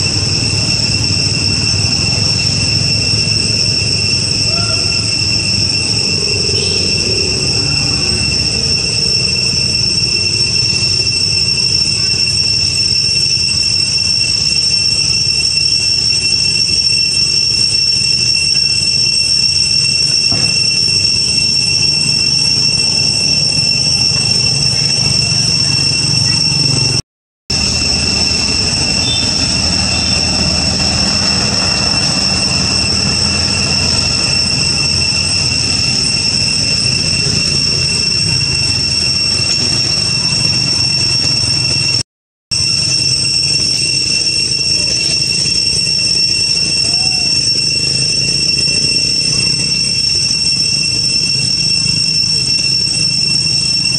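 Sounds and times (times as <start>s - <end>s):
cicada chorus: 0.0s - 53.9s.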